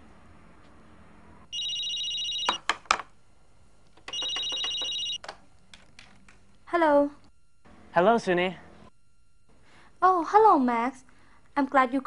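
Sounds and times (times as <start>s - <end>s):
desk telephone ringing: 1.5s - 2.7s, 4.0s - 5.2s.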